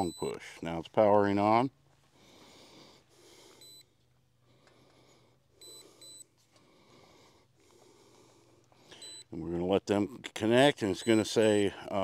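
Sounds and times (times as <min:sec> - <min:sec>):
faint high-pitched electronic beeps: 0:00.0 - 0:00.7, 0:10.8 - 0:11.6.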